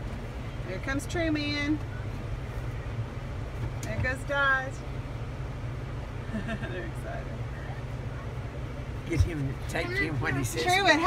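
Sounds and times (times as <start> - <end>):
low engine rumble: 0.0 - 11.0.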